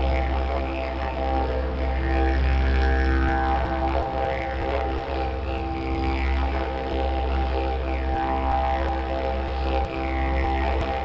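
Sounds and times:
didgeridoo drone: 0.0s - 11.0s.

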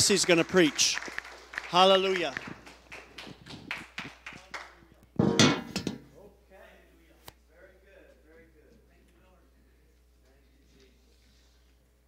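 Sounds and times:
scattered clapping: 0.0s - 4.8s.

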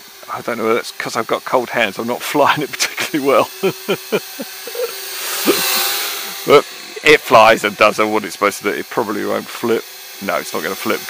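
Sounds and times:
toy quadcopter buzzing: 0.0s - 11.0s.

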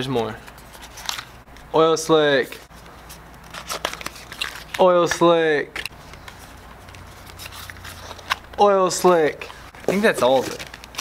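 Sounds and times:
packaging crinkling: 3.4s - 4.8s, 9.4s - 11.0s.

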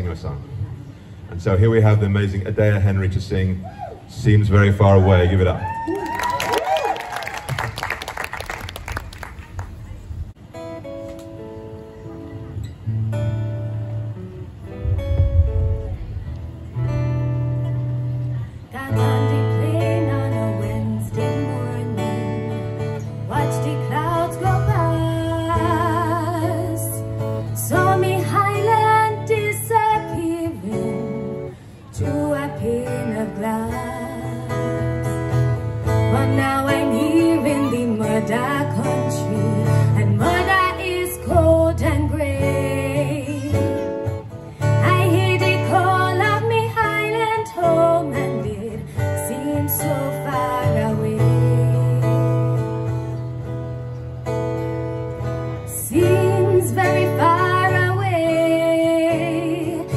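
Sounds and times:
live band with guitar and bass: 0.0s - 59.9s
woman singing with vibrato: 18.6s - 35.2s, 35.8s - 52.8s, 55.7s - 59.9s.

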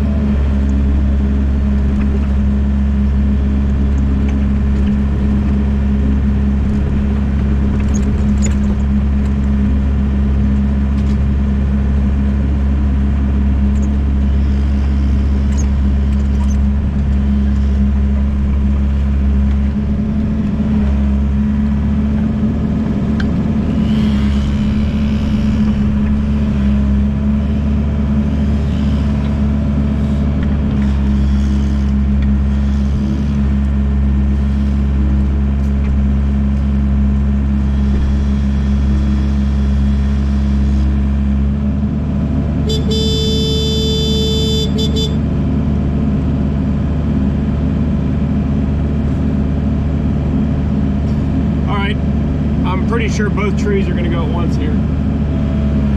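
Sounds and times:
diesel engine running: 0.0s - 55.9s.

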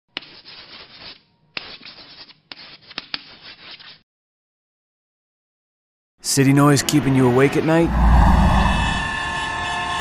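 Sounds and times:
chalk scratching on chalkboard: 0.2s - 4.0s.

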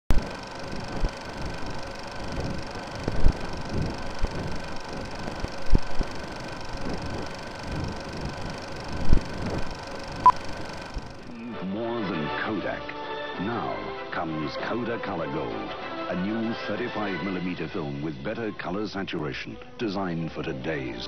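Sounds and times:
film soundtrack hiss and hum: 0.1s - 21.0s.

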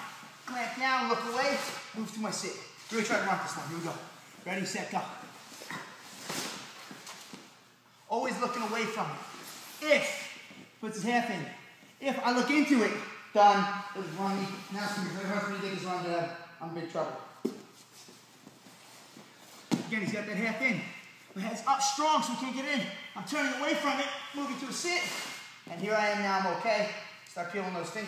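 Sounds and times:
bodies sliding on mat: 5.2s - 7.6s, 17.4s - 19.9s.

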